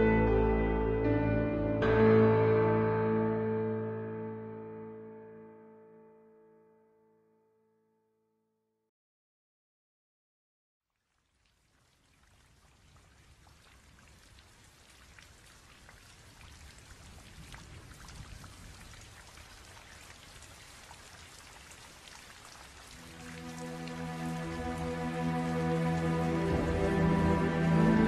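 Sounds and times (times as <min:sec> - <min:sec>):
slow instrumental chords: 0:00.0 - 0:06.3, 0:23.0 - 0:28.0
rain: 0:11.0 - 0:28.0
rain drop ticks: 0:11.4 - 0:26.8.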